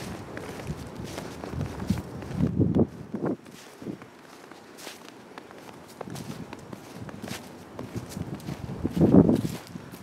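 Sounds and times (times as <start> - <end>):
footsteps on thin snow: 0.0 - 10.0.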